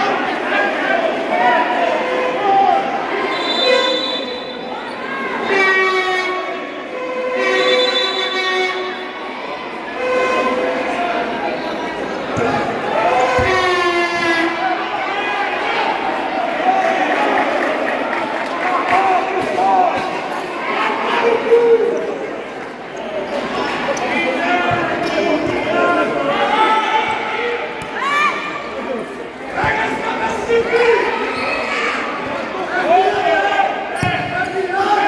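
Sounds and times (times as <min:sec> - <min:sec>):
crowd shouting: 0:12.3 - 0:35.0.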